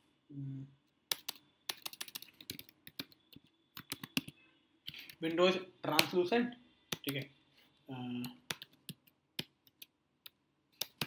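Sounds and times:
computer keyboard typing: 0:01.1 - 0:05.3, 0:08.2 - 0:11.0.

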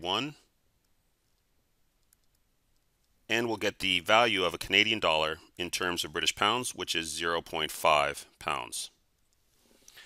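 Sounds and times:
very faint clicks: 0:00.8 - 0:03.2.

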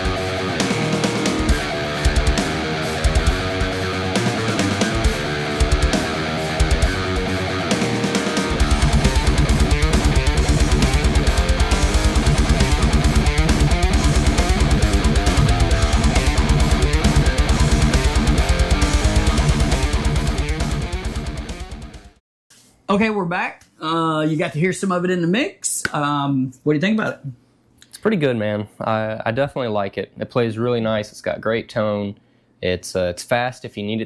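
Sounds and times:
backing track music: 0:00.0 - 0:22.2
heavy metal electric guitar: 0:00.0 - 0:22.2.

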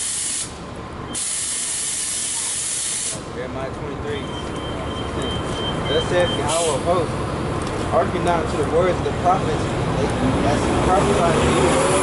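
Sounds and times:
loud hissing bursts: 0:00.0 - 0:00.6, 0:01.2 - 0:03.3.

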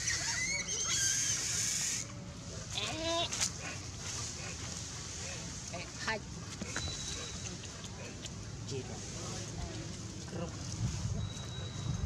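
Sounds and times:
macaque call: 0:00.0 - 0:02.1.

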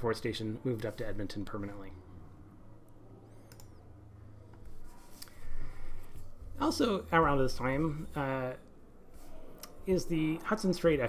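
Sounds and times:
steady low hum: 0:00.0 - 0:11.0
small clicks: 0:03.4 - 0:03.8.

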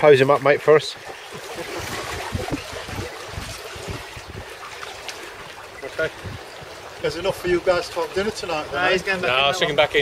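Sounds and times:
choppy sea: 0:00.0 - 0:10.0
rushing wind: 0:01.6 - 0:07.5
wind buffeting microphone: 0:01.6 - 0:10.0.

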